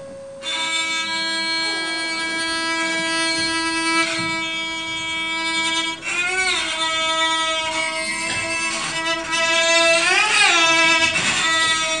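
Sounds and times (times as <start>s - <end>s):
long string bowed note: 0.0s - 12.0s.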